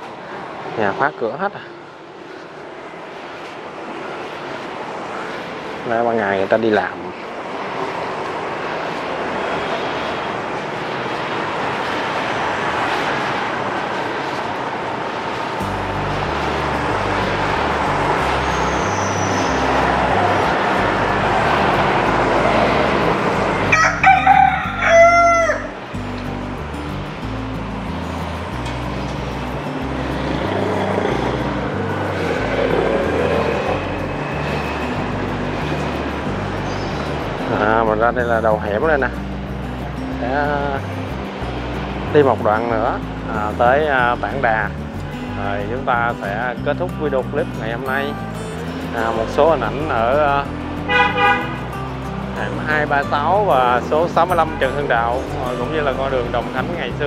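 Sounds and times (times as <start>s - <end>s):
steady background noise: 0.0s - 23.8s
background music with bass: 15.6s - 57.0s
rooster crowing: 23.7s - 25.8s.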